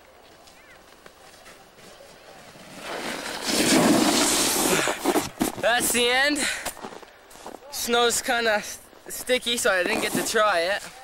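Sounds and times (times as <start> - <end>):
snowboard skidding on snow: 2.0 - 6.0, 9.7 - 10.9.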